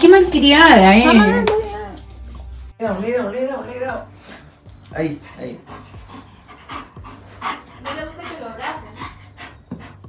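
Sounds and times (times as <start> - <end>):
dog panting quickly: 5.0 - 10.0.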